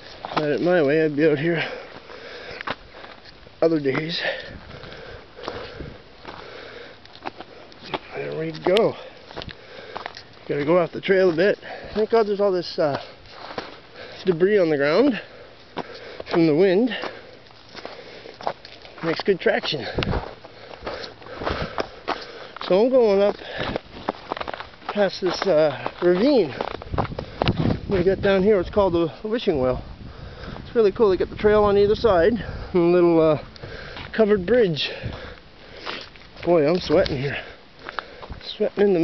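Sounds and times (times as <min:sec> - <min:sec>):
footsteps crunching on snow: 0:00.0 - 0:29.6, 0:33.0 - 0:39.0
man sniffing and breathing: 0:01.6 - 0:03.2, 0:04.2 - 0:08.0, 0:08.9 - 0:10.3, 0:15.2 - 0:18.6, 0:19.8 - 0:22.6, 0:33.5 - 0:34.2, 0:34.9 - 0:36.2.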